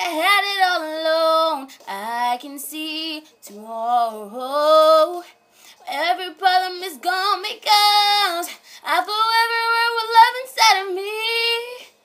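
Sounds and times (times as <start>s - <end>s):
woman singing unaccompanied: 0.0s - 12.0s.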